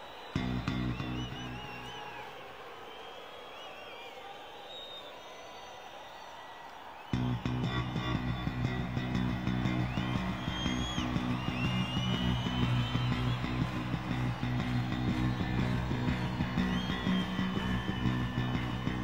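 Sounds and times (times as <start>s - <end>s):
sliding lead guitar notes: 0.4s - 1.6s, 7.2s - 19.0s.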